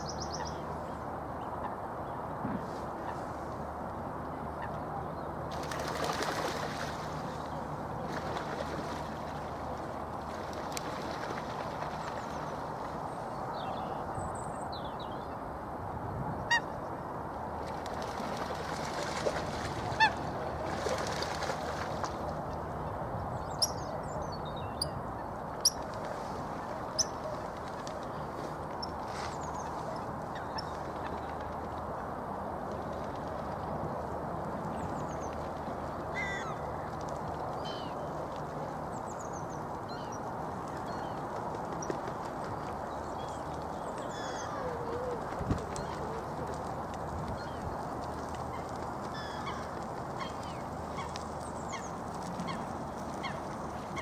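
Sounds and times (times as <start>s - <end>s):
waterbirds calling: 18.0s - 22.8s, 23.4s - 31.6s, 34.7s - 54.0s.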